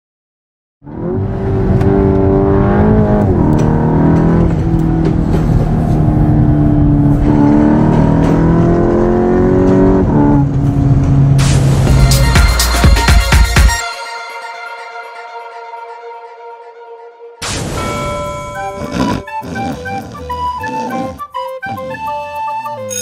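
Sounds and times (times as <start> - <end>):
racing car engine at high revs: 0.8 - 11.9, 18.6 - 22.0.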